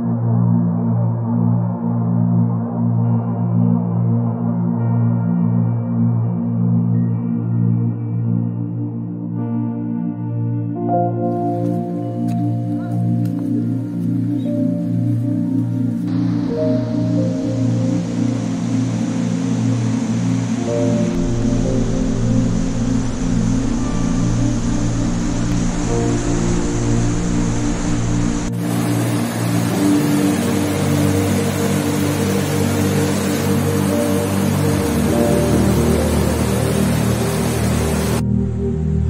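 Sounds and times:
slow ambient music: 0.0s - 39.0s
rushing water: 16.1s - 38.2s.

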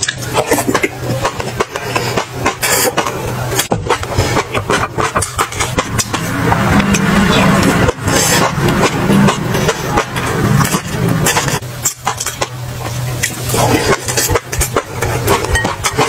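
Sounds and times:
low steady rumble: 0.0s - 16.0s.

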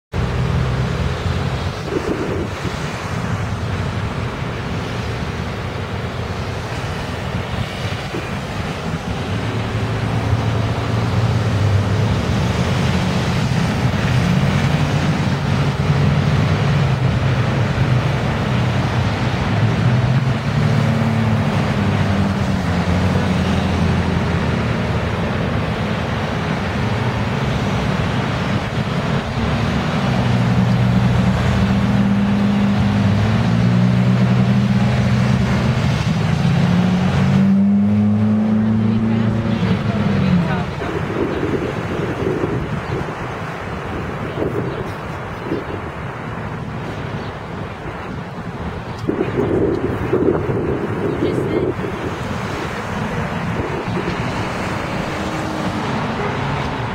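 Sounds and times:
traffic noise: 0.1s - 56.9s
vehicle engine droning: 0.1s - 56.9s.

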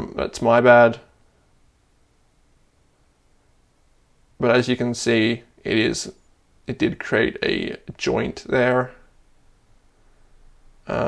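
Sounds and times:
man speaking: 0.0s - 1.1s, 4.4s - 9.1s.

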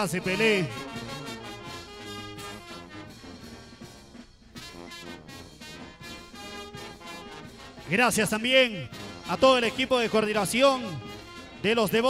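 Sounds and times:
drums: 0.0s - 12.0s
horns and sousaphones: 0.0s - 12.0s.

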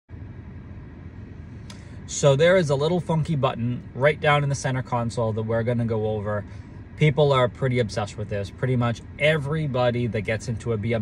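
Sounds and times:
car cabin background noise: 0.1s - 11.0s.

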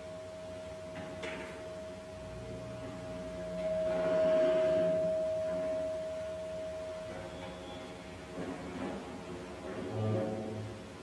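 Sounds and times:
steady high tone: 0.0s - 8.4s.

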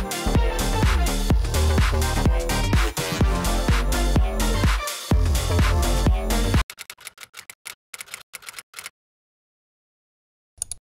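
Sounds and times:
typewriter key clicks: 6.7s - 8.9s.

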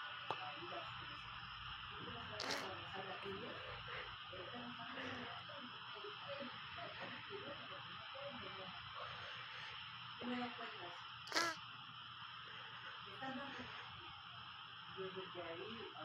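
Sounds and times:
muffled voices: 0.0s - 16.0s
steady hiss: 0.0s - 16.0s.

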